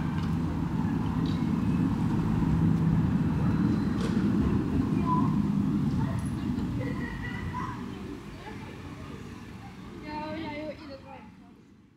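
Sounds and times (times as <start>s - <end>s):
faint voices: 4.2s - 11.8s.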